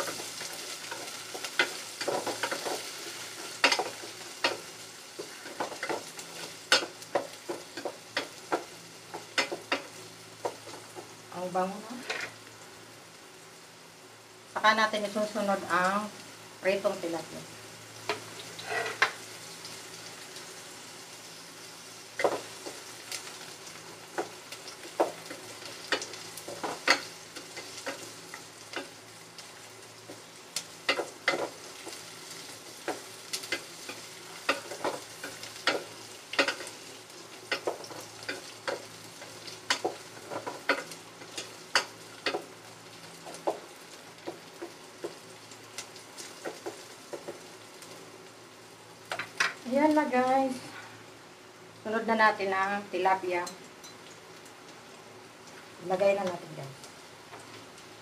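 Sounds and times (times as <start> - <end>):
food sizzling in hot oil: 0.0 - 58.0.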